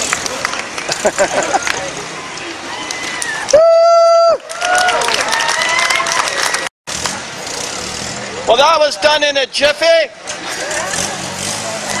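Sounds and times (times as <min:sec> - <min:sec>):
faint crowd voices: 0:05.0 - 0:12.0.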